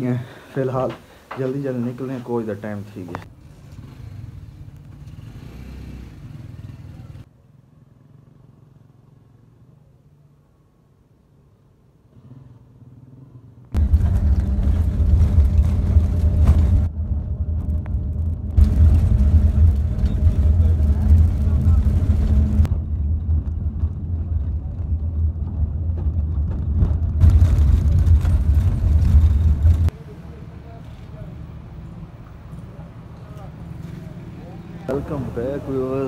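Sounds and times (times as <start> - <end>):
vehicle engine and road rumble: 2.3 - 36.0.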